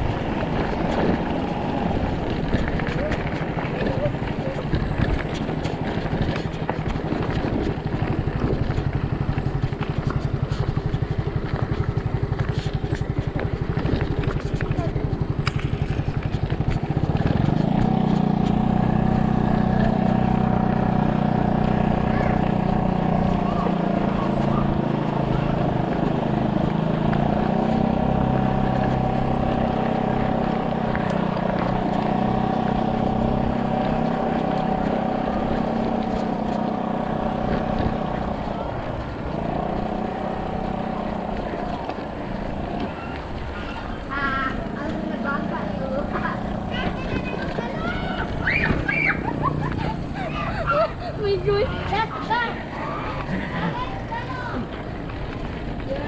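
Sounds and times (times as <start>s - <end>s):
bike tyres on gravel: 0.0s - 56.0s
wind rumble: 0.0s - 56.0s.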